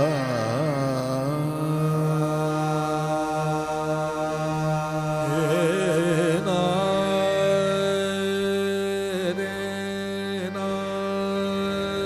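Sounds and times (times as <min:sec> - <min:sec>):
man singing qawwali: 0:00.0 - 0:12.0.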